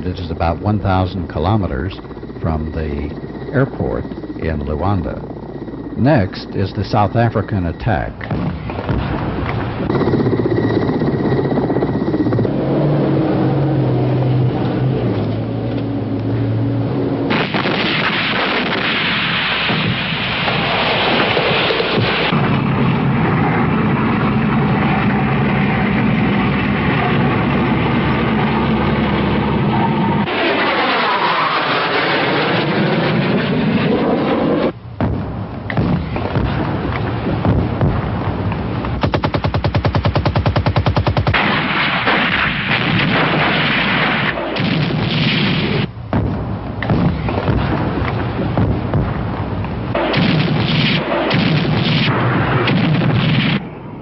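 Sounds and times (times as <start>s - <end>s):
gun and artillery reports: 0.0s - 12.4s, 35.0s - 53.8s
armoured vehicle engine running: 0.0s - 17.3s, 21.3s - 41.2s
vehicle passing by: 12.3s - 15.8s
rapid machine-gun fire: 17.3s - 22.6s, 39.0s - 46.3s, 49.9s - 53.6s.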